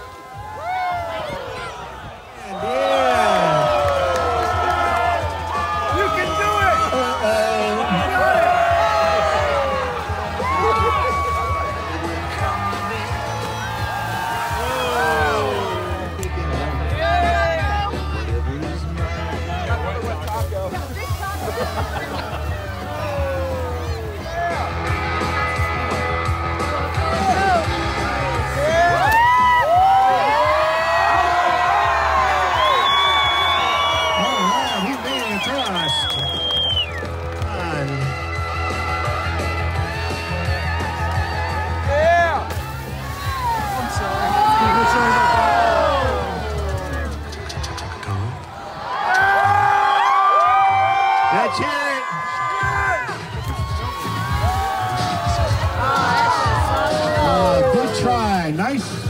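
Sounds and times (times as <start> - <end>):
crowd cheering and shouting: 0.0 - 59.0
music with steady bass line: 3.0 - 34.3, 37.0 - 48.4, 52.6 - 59.0.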